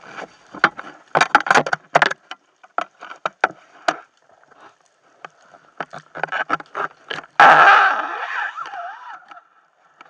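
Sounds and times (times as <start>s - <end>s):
wavering squeal: 7.4s - 9.5s.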